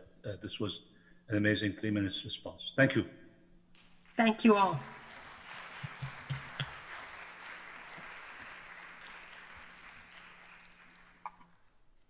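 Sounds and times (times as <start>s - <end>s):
audience applauding: 3.8s - 11.8s.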